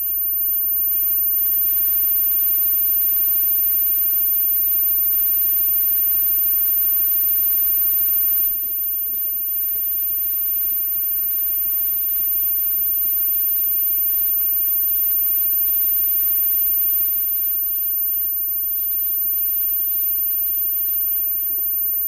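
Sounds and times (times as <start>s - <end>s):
electrical mains hum: 0.0s - 22.0s
thin high whine: 0.0s - 22.0s.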